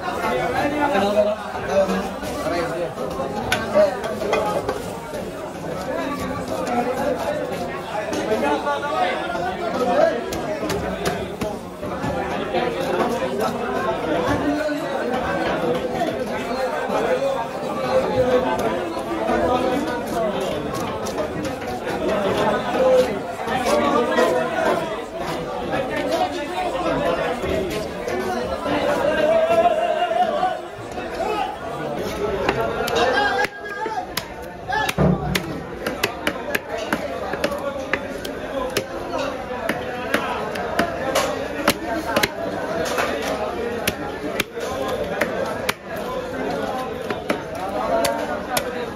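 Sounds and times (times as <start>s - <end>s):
chatter of voices: 0.0s - 48.9s.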